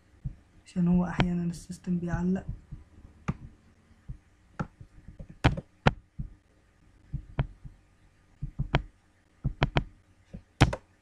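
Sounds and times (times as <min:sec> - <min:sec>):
computer keyboard and mouse clicks: 0:03.3 - 0:03.5, 0:04.6 - 0:06.0, 0:08.4 - 0:08.9, 0:09.5 - 0:10.9.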